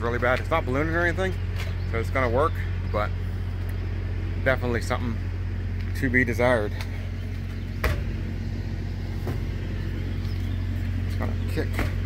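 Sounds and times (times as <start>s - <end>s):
truck diesel engine idling: 0.0s - 12.0s.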